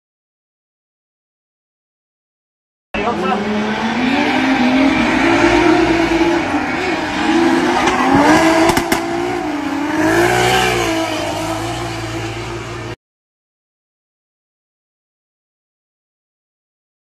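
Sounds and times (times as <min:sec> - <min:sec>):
car engines revving: 0:03.0 - 0:13.0.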